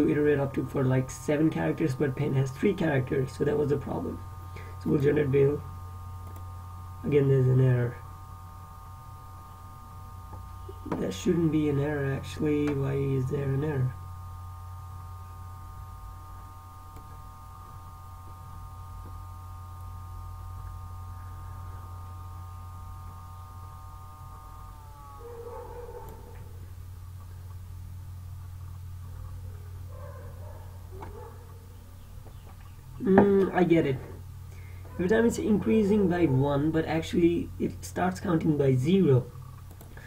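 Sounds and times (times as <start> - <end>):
low electrical hum: 0.0 - 40.0
higher buzz sliding down: 4.0 - 29.4.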